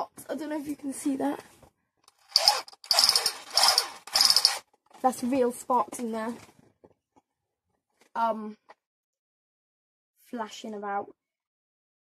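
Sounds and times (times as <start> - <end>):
toy machine gun rattling: 2.1 - 4.6.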